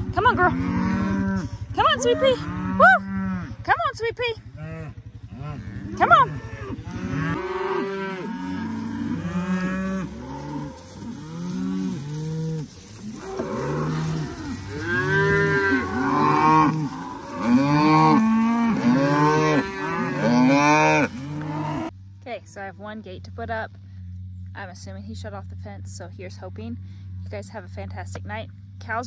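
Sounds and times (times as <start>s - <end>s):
cattle mooing: 0.0s - 3.7s, 4.5s - 21.9s.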